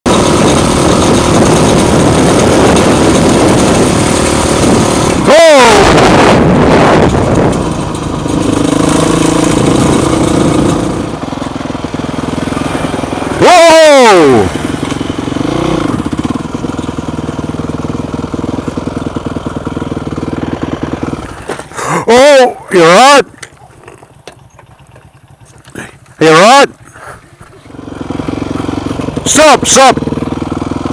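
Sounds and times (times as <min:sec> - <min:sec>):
dirt bike engine running: 0:00.1 - 0:30.9
rider crying out: 0:05.1 - 0:06.9, 0:12.6 - 0:14.8, 0:21.3 - 0:24.2.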